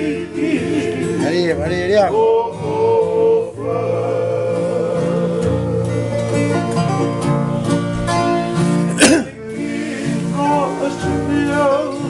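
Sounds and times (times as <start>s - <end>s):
men singing together: 0.0s - 6.9s, 9.0s - 12.0s
acoustic guitars strummed: 0.0s - 12.0s.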